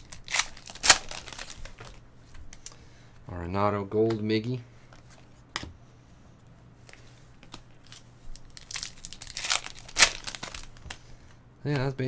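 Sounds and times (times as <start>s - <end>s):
wrapper crinkling and tearing: 0.0s - 2.0s, 7.8s - 11.0s.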